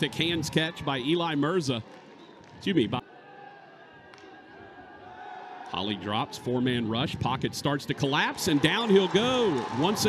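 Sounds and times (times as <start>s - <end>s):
faint stadium ambience: 0.0s - 10.0s.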